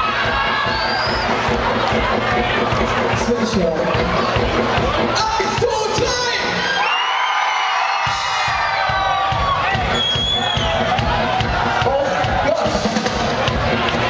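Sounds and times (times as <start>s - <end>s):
live rock band playing: 0.0s - 6.8s, 7.9s - 14.0s
crowd cheering and shouting: 0.0s - 14.0s.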